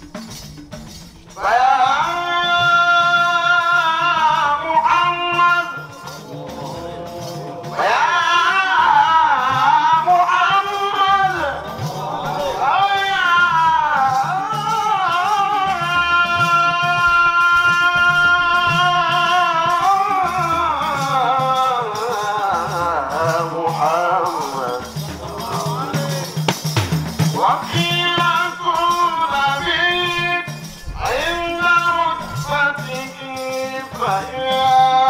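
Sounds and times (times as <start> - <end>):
low rhythmic backing: 0.0 - 35.0
man singing devotional chant: 1.3 - 35.0.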